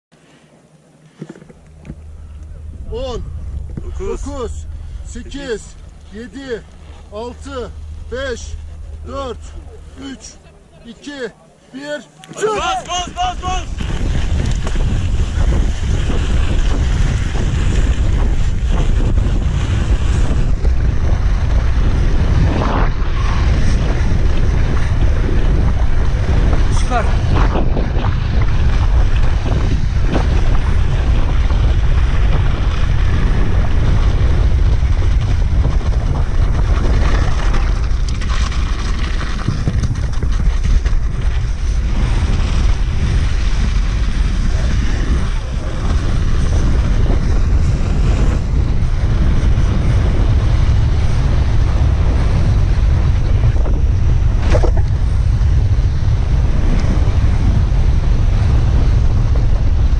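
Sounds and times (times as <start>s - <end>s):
wind buffeting microphone: 1.2s - 11.1s, 12.4s - 59.9s.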